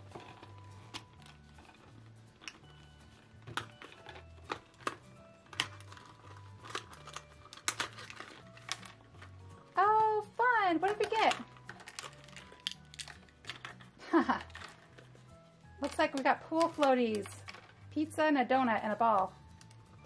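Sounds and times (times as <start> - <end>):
soft background music: 0.0 - 20.0
toy egg shell cracking: 2.3 - 9.5, 10.8 - 15.2.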